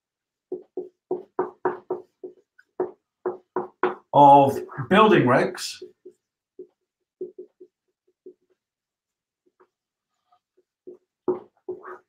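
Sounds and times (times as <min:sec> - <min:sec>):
marker squeaking on whiteboard: 0:00.5 - 0:05.1, 0:05.8 - 0:12.0.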